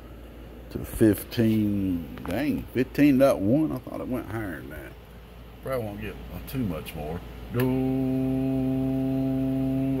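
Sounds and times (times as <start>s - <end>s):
man humming a low note: 7.5s - 10.0s.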